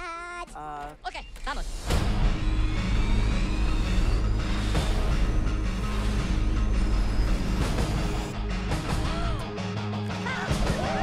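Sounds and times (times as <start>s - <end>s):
music: 1.1s - 11.0s
jet engines at takeoff power: 1.7s - 9.0s.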